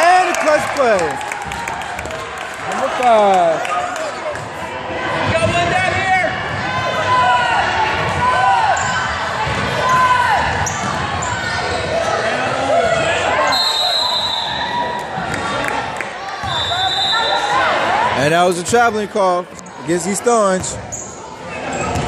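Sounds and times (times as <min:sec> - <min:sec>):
people shouting in echoing gym: 0:04.0 - 0:15.6
referee's whistle: 0:13.4 - 0:14.8, 0:16.5 - 0:17.5.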